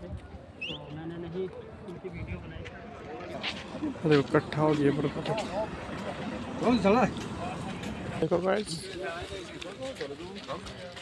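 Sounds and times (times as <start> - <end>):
outdoor background noise: 0.0 - 11.0
people's voices: 0.0 - 11.0.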